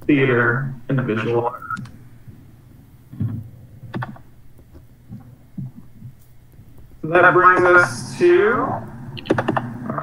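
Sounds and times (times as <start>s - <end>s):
low steady hum: 0.0s - 10.0s
soft low thuds: 2.0s - 9.8s.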